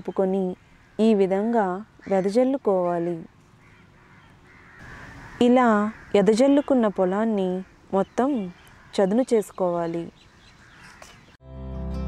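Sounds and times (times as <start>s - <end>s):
woman narrating: 0.0s - 3.3s, 5.4s - 10.2s
faint bird calling: 0.0s - 11.4s.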